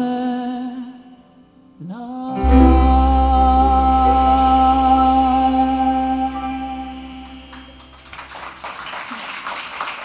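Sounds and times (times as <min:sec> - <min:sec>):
deep bass note: 0:02.4 - 0:08.0
live band held chord: 0:02.4 - 0:09.0
audience applause: 0:07.2 - 0:10.0.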